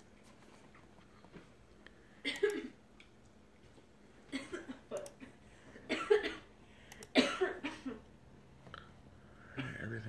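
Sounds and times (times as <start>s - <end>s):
person coughing: 2.2s - 2.8s, 4.3s - 4.9s, 5.9s - 6.5s, 7.1s - 8.0s, 9.5s - 10.0s
computer mouse clicking: 6.9s - 7.2s.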